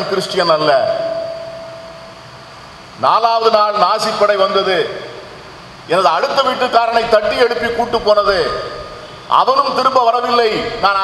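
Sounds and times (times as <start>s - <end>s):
man speaking over public address: 0.0s - 1.3s, 3.0s - 5.2s, 5.9s - 11.0s
background hiss: 0.0s - 11.0s
thin ringing tone: 0.8s - 2.4s.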